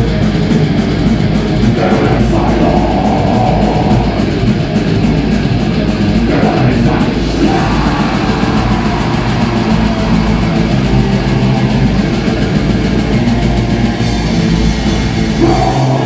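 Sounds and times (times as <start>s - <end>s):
heavy metal band playing: 0.0s - 16.0s.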